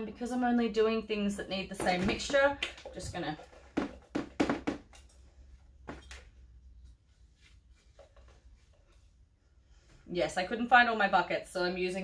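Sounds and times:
plastic knocks and scrapes: 1.7 - 5.1.

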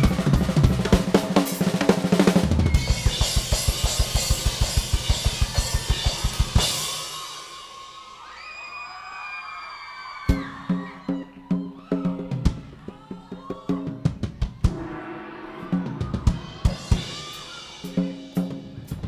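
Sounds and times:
rock drum solo: 0.0 - 8.2, 10.2 - 19.0.

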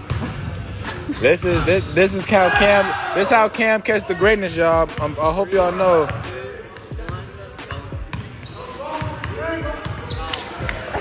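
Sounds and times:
voices chattering: 0.8 - 11.0.

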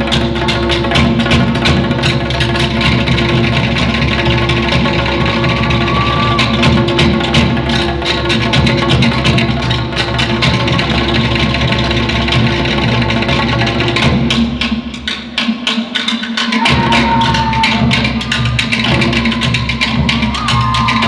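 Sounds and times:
wooden slit drums striking: 0.0 - 21.0.

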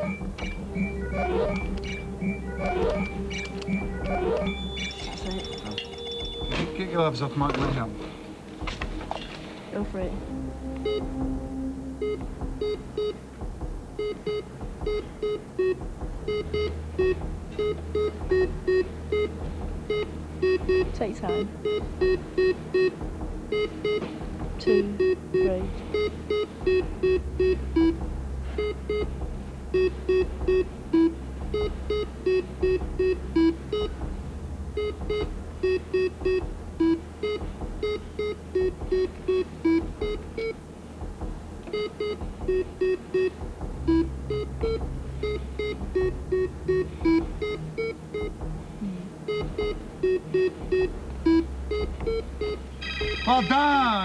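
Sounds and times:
electronic game-show beeps: 0.0 - 7.5, 14.0 - 24.0, 24.6 - 33.9, 34.8 - 40.6, 41.7 - 48.4, 49.3 - 54.0
low synth drone: 0.0 - 53.2.

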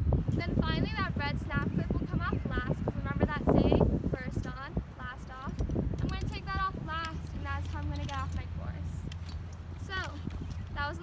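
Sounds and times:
metal clips clicking and clinking: 5.4 - 11.0.

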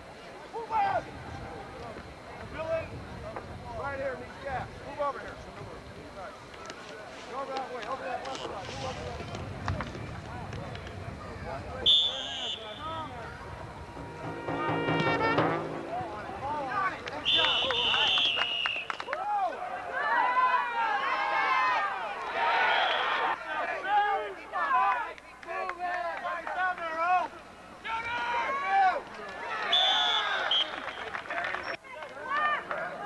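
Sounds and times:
spectators shouting: 11.1 - 25.1
referee's whistle blasts: 11.8 - 13.2, 17.1 - 19.1, 22.6 - 23.2, 29.7 - 30.9
held horn-like note: 11.9 - 18.5.

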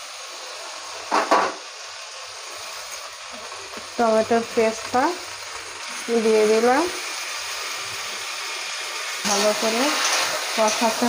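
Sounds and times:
food sizzling in oil: 0.0 - 11.0.

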